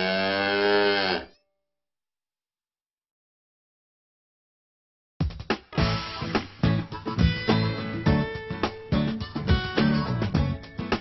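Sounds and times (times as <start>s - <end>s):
cow mooing: 0.0s - 1.4s.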